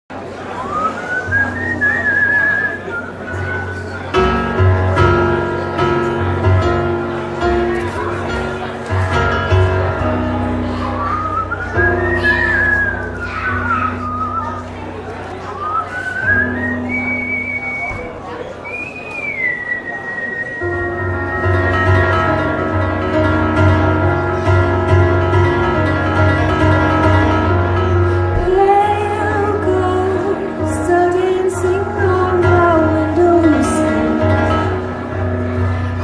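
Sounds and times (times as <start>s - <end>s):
person whistling a long note: 0.6s - 4.0s, 10.8s - 14.7s, 15.4s - 22.1s.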